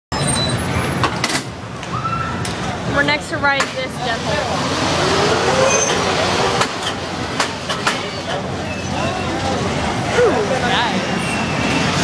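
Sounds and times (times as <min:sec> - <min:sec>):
crowd voices: 0:01.8 - 0:12.0
ride machinery: 0:02.4 - 0:12.0.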